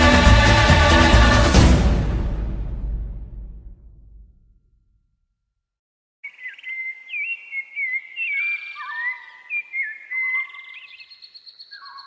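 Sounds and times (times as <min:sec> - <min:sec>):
bird chirps and whistles: 0:06.2 - 0:12.0.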